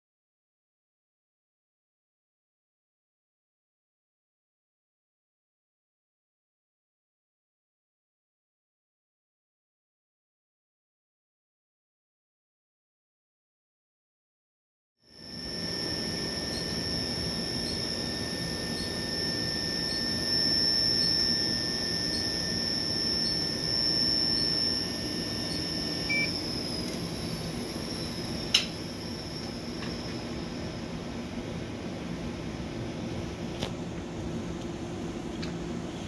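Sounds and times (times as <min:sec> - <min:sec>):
high-pitched machine whine: 0:15.0 - 0:36.0
low room hum: 0:15.1 - 0:36.0
short beep: 0:16.1 - 0:26.9.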